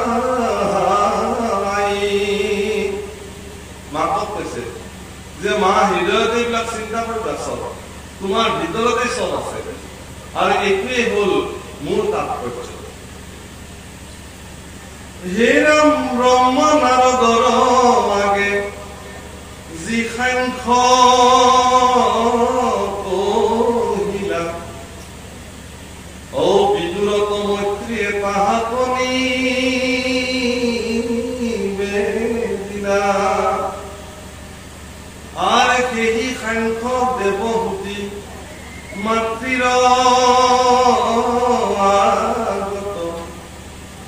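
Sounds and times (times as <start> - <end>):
man chanting into microphone: 0.0 - 13.0, 15.2 - 25.0, 26.3 - 34.3, 35.3 - 43.6.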